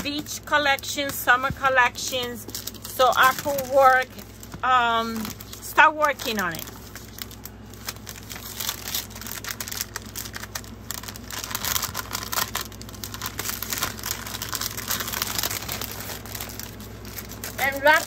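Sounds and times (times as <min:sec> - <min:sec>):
packaging crinkling and rustling: 0:00.0 - 0:18.0.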